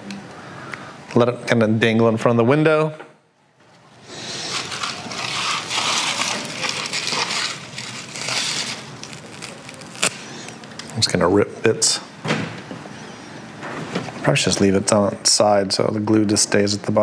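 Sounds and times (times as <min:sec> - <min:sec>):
moss and fibres ripped apart: 0:04.4 - 0:10.6.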